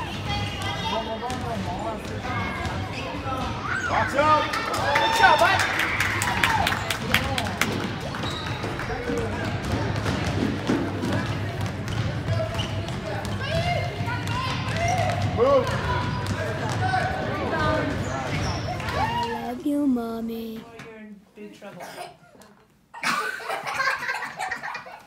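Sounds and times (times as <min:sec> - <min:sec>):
voices echoing in hall: 0:00.0 - 0:22.0
basketball bouncing on hardwood: 0:09.1 - 0:17.0.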